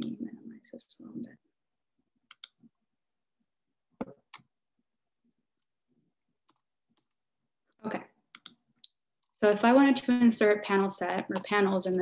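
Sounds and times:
computer mouse clicks: 2.3s - 2.7s, 4.2s - 4.7s, 8.3s - 9.4s.

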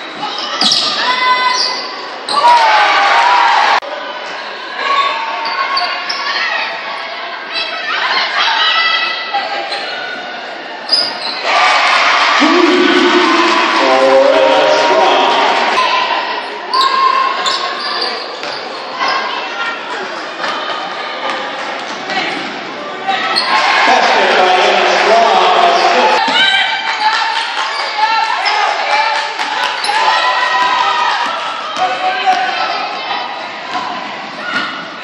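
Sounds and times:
crowd noise: 0.0s - 35.0s
sneaker squeaks: 0.1s - 2.5s, 5.4s - 6.4s, 10.9s - 11.4s, 16.7s - 19.3s, 23.2s - 23.5s
voices calling out: 10.9s - 19.7s.

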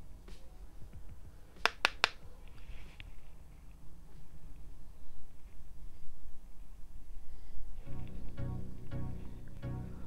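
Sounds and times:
brush tapping plastic compact: 1.6s - 2.2s.

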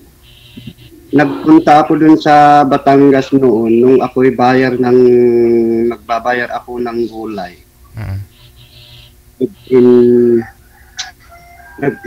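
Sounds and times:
faint steady tones: 0.0s - 12.0s
person talking over video call: 1.1s - 8.3s, 9.4s - 10.4s
drawn-out hesitation vowel: 7.9s - 10.5s.

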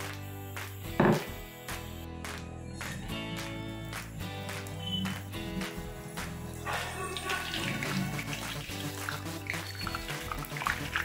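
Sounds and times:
background music: 0.0s - 11.0s
hot oil sizzling and bubbling: 6.3s - 11.0s.

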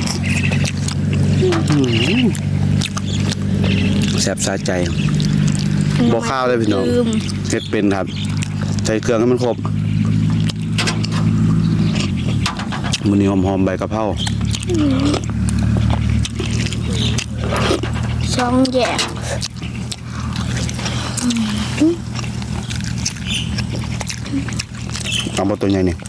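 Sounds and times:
mouth smacks: 0.0s - 6.3s, 7.1s - 13.2s, 14.2s - 26.0s
person chewing food: 0.0s - 13.5s, 14.2s - 26.0s
steady low hum: 0.0s - 26.0s.

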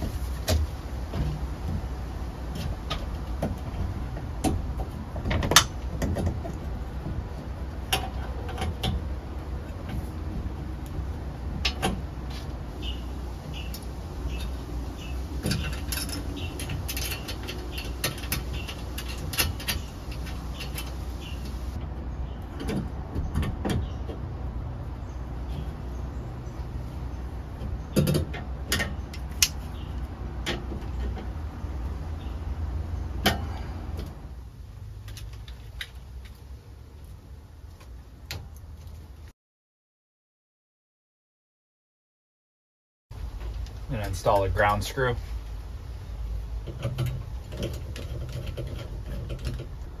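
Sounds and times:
metal and plastic clicks and scrapes: 15.4s - 21.0s, 46.6s - 50.0s.

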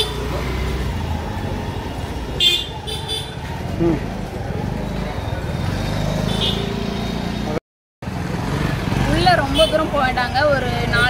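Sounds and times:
street traffic noise: 0.0s - 11.0s
woman talking: 9.1s - 11.0s.

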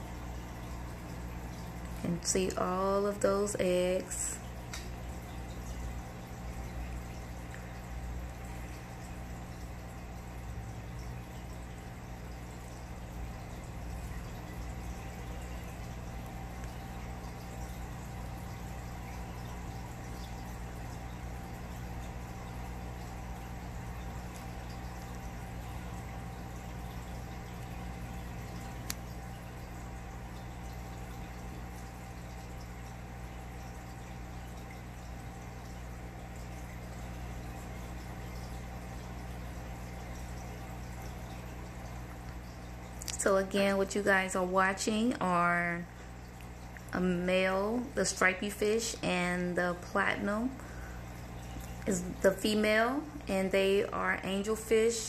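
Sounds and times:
aquarium water bubbling: 0.0s - 55.0s
equipment hum: 0.0s - 55.0s.

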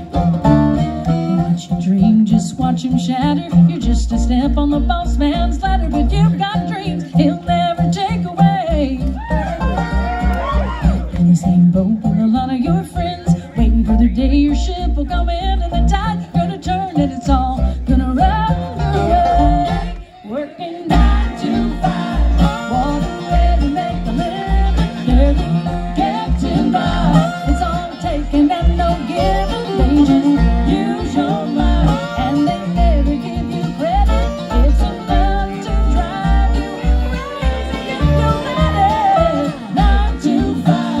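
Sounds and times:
bluegrass band playing: 0.0s - 41.0s.

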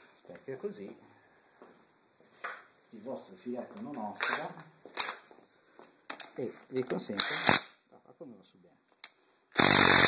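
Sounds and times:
impact driver burst: 7.2s - 7.8s, 9.5s - 10.0s.

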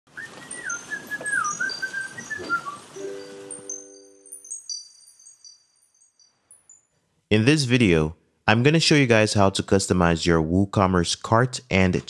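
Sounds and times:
sliding whistle: 0.1s - 3.5s
high sparkling chimes: 0.1s - 7.2s
held chord: 3.0s - 4.4s.

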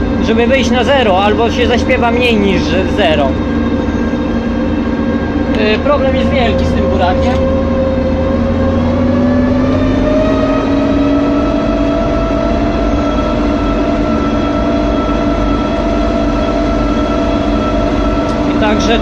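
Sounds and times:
combine harvester engine running: 0.0s - 19.0s.

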